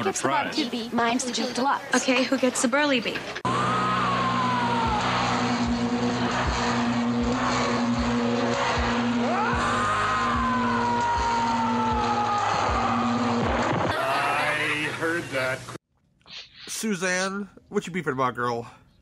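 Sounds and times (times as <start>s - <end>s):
rising and falling whines: 3.5s - 13.6s.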